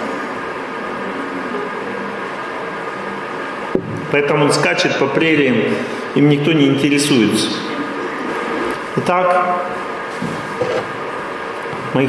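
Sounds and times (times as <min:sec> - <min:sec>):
hall hiss and hum: 0:00.0 - 0:12.0.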